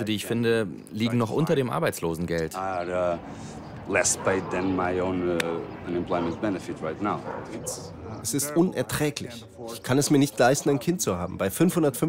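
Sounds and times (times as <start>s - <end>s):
man speaking through loudspeakers: 3.8s - 12.0s.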